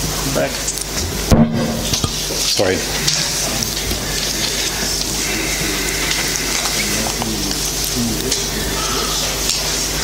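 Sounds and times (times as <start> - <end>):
low electrical hum: 0.0 - 10.0
steady hiss: 0.0 - 10.0.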